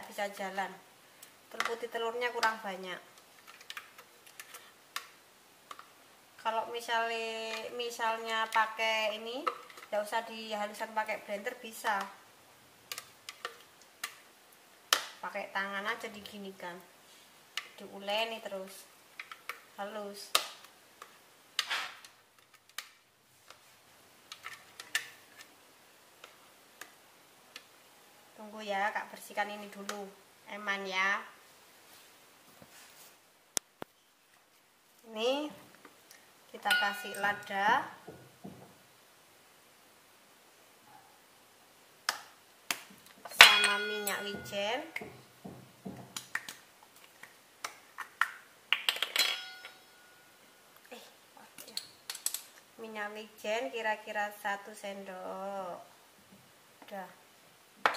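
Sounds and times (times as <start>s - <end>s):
ringing clink: 36.7s - 37.4s, 43.4s - 44.6s, 49.2s - 50.4s.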